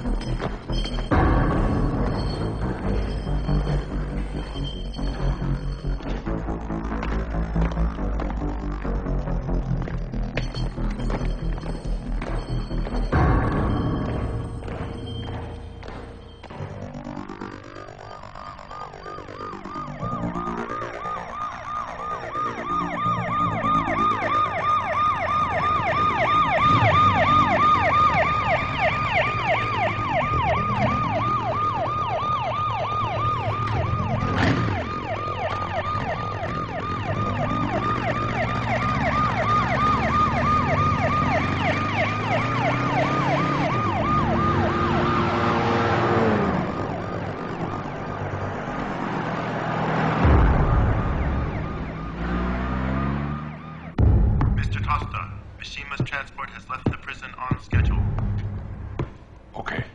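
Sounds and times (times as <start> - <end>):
vehicle engine: 0.0 - 18.4, 25.1 - 59.6
siren warbling: 0.0 - 54.1.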